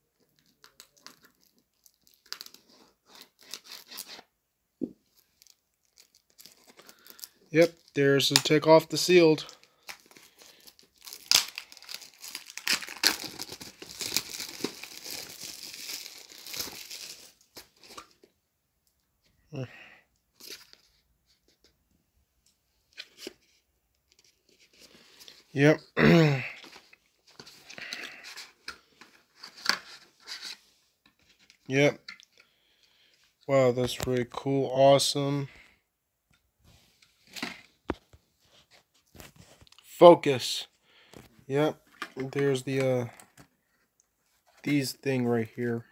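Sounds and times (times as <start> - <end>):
plastic wrap crinkling and tearing: 0.4 - 4.2, 5.2 - 18.2.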